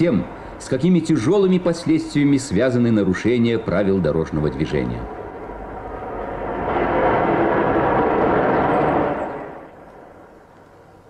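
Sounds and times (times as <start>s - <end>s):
car driving past: 5.1s - 10.6s.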